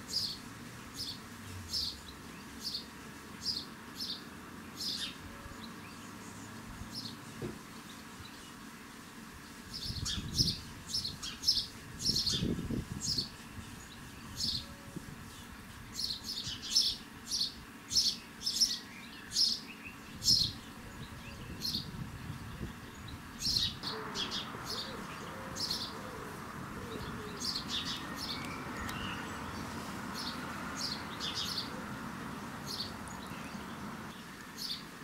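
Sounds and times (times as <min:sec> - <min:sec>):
sparrow chirping: 0:00.1 - 0:07.2, 0:09.7 - 0:34.8.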